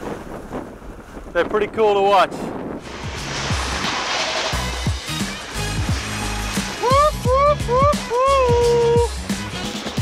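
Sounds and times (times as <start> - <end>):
sea waves: 0.0 - 10.0
wind: 0.0 - 10.0
music with kick drum and bass: 4.9 - 10.0.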